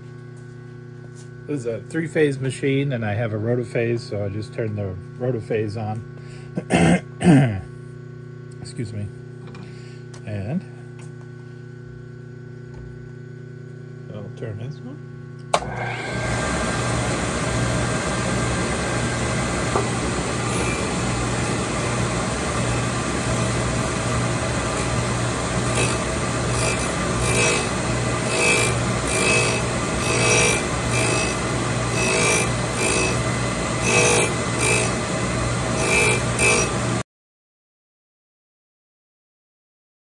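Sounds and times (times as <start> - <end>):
machine hum: 0.0 - 37.0
grinding wheel on steel: 18.7 - 37.0.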